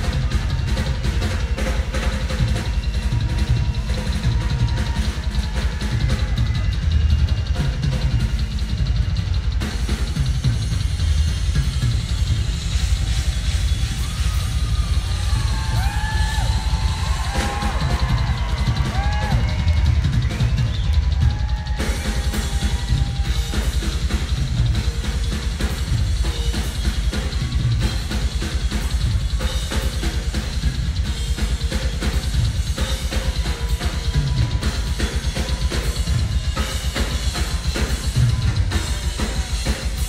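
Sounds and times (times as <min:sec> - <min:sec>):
loud drum solo: 0:00.0 - 0:40.0.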